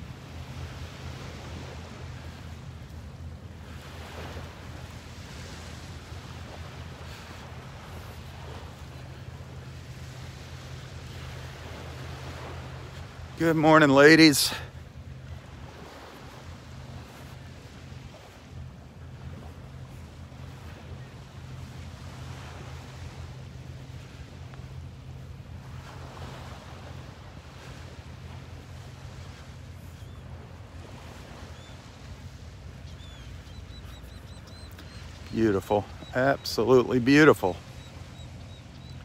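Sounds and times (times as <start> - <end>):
low steady rumble: 0.0 - 39.0
surf washing ashore: 0.0 - 39.0
faint high chirps: 32.9 - 36.6.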